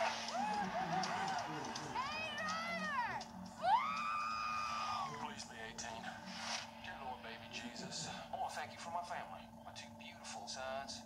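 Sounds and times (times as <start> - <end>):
film soundtrack on small speaker: 0.0 - 11.0.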